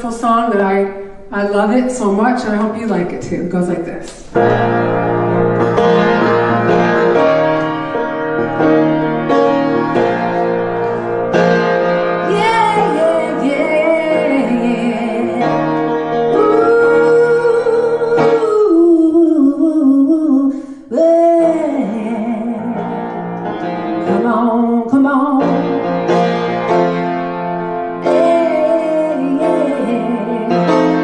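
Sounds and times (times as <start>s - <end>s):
piano accompaniment: 4.3s - 19.8s, 21.0s - 31.0s
woman singing blues: 12.2s - 15.6s, 16.2s - 23.2s, 24.0s - 25.6s, 28.0s - 31.0s.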